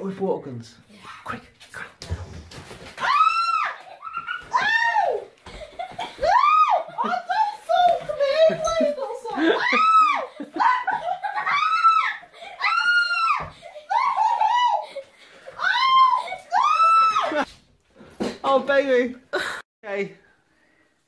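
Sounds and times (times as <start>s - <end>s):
people shrieking and laughing: 3.0s - 17.5s.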